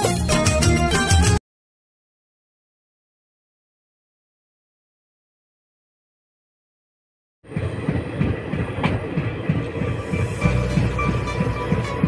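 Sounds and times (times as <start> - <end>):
music playing: 0.0 - 1.4, 9.5 - 12.0
train wheels rumbling on rails: 7.4 - 12.0.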